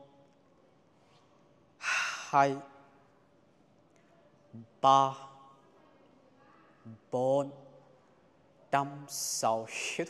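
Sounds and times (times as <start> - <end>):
sharp breath close to microphone: 1.8 - 2.4.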